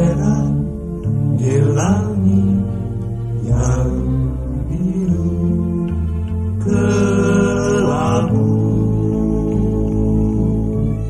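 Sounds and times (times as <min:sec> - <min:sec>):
chant-like voice singing: 0:00.0 - 0:11.0
held low notes: 0:00.0 - 0:11.0.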